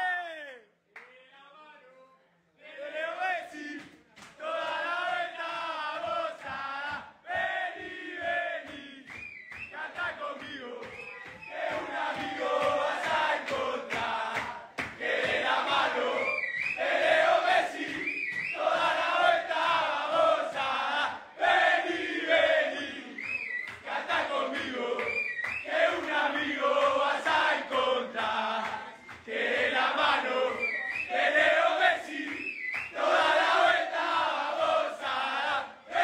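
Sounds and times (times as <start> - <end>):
men chanting and singing: 2.7 - 23.2, 23.8 - 36.0
regular low beat: 6.4 - 9.0
men chanting and shouting: 9.7 - 23.2.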